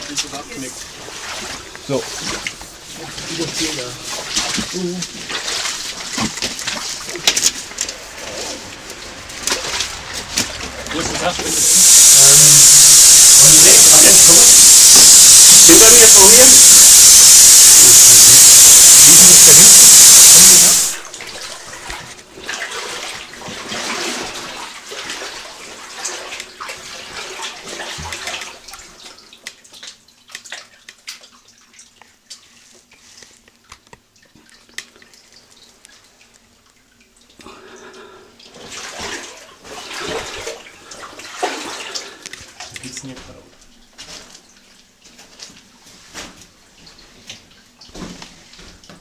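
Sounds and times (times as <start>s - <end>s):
water splashing and sloshing: 0.0s - 11.5s, 21.0s - 37.4s, 38.4s - 49.0s
loud steady hiss: 9.8s - 21.5s.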